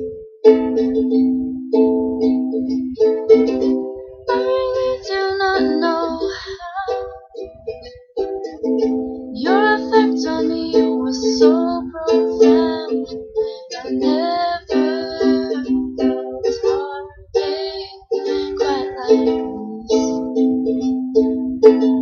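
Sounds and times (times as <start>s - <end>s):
ukulele strumming chords: 0.0s - 22.0s
person singing: 4.2s - 7.7s, 9.3s - 20.9s.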